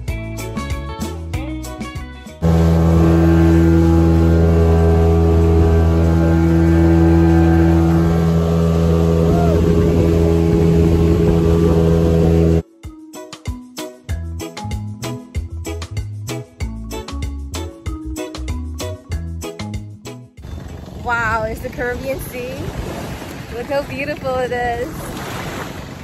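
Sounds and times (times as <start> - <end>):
motorboat engine running: 2.4 - 12.6, 20.4 - 26.0
rushing wind: 5.3 - 12.6
music with plucked notes: 9.8 - 20.4.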